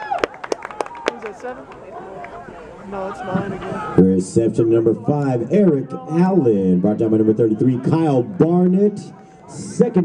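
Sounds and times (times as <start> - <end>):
crowd voices: 0.0 - 10.0
sharp claps: 0.1 - 2.4.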